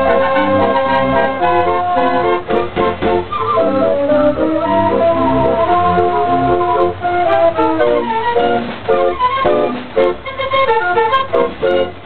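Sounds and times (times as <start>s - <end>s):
dance organ playing a tune: 0.0s - 12.0s.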